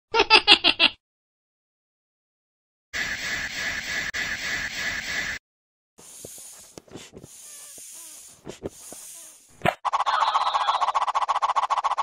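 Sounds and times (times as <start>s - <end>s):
rapid fluttering buzz: 7.3s - 9.6s.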